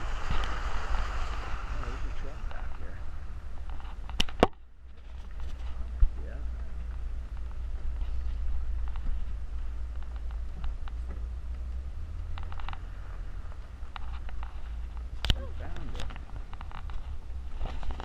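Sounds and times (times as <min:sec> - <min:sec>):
van engine rumbling: 0:00.0 - 0:18.0
rattles and clicks: 0:03.6 - 0:18.0.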